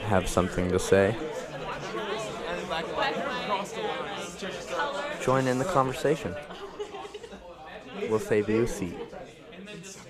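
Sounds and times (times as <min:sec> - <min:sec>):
group conversation: 0:00.0 - 0:10.0.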